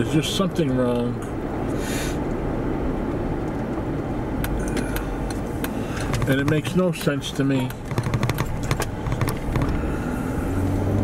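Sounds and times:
car engine hum: 0:00.0 - 0:11.0
tyre and road noise: 0:00.0 - 0:11.0.

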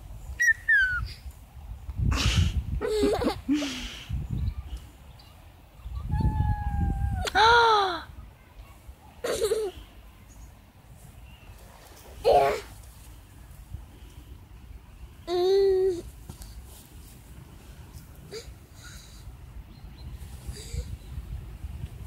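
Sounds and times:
wind rumbling on microphone: 0:00.0 - 0:08.3, 0:19.3 - 0:22.0
young child squealing: 0:06.0 - 0:07.8.

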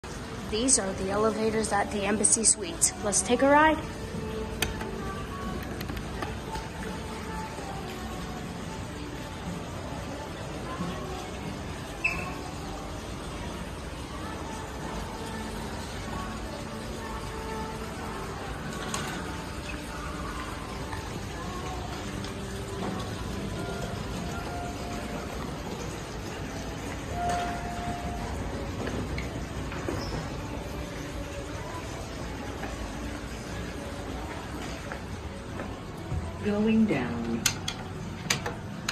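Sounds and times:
faint background music: 0:00.0 - 0:38.9.

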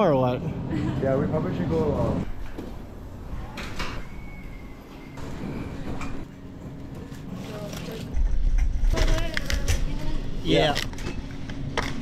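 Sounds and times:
shop noise: 0:01.5 - 0:12.0.

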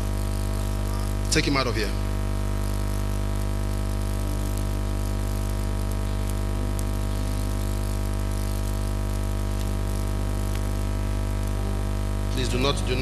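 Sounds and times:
low electrical hum: 0:00.0 - 0:13.0
faint musical notes: 0:11.6 - 0:13.0.

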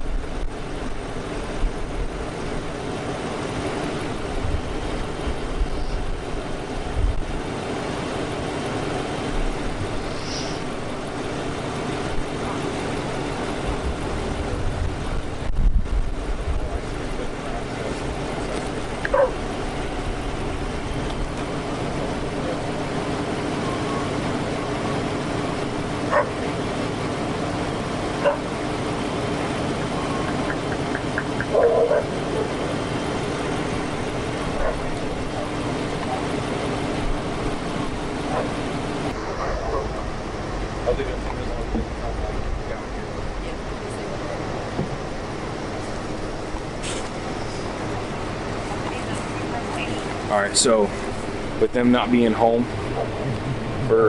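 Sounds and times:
car engine idling: 0:00.0 - 0:54.0
dog barking: 0:19.1 - 0:19.4, 0:26.1 - 0:26.4, 0:28.2 - 0:28.5, 0:31.4 - 0:32.6, 0:34.5 - 0:34.9, 0:38.3 - 0:38.6, 0:39.3 - 0:40.2.

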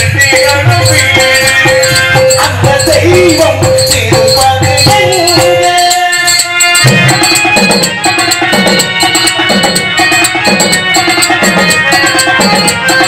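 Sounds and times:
harmonium holding tones: 0:00.0 - 0:13.0
tabla drumming: 0:00.0 - 0:13.0.

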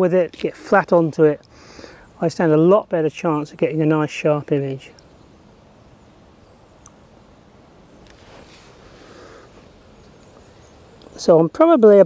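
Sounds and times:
wind through long grass: 0:00.0 - 0:12.0
soft rustle: 0:07.9 - 0:11.3.

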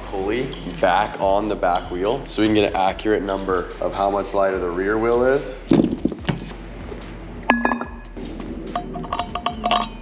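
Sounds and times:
metal parts clinking: 0:00.4 - 0:02.7, 0:05.6 - 0:06.6, 0:08.8 - 0:10.0.

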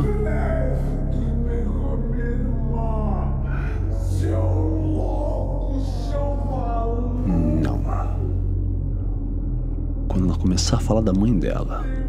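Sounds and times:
deep low drone: 0:00.0 - 0:12.0.

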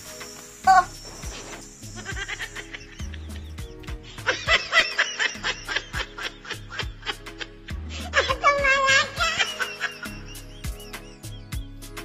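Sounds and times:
background music with steady beat: 0:00.0 - 0:12.0
person laughing: 0:02.0 - 0:11.4.

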